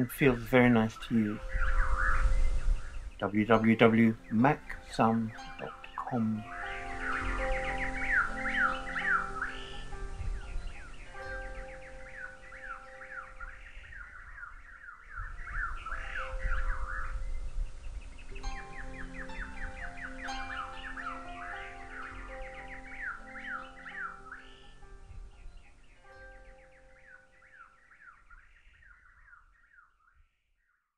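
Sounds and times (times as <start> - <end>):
harp music: 0.0 - 28.2
birds chirping: 0.0 - 30.3.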